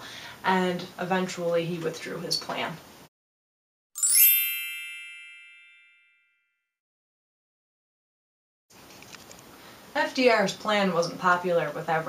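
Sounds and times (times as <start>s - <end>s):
bell-like ding ringing: 4.0s - 6.6s.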